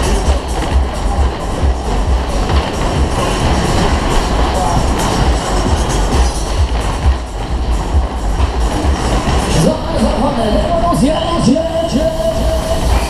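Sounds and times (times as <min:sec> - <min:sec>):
ride car rumbling on track: 0:00.0 - 0:13.0
ride music: 0:00.0 - 0:13.0.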